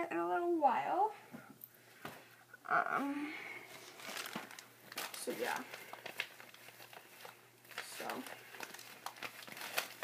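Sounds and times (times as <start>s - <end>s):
tissue paper crinkling: 3.7s - 10.0s.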